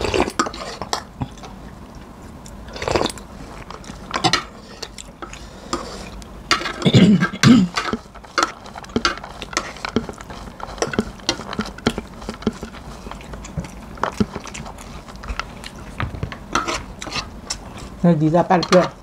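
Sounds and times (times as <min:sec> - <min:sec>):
chewing: 0:00.0 - 0:07.0, 0:07.8 - 0:18.0.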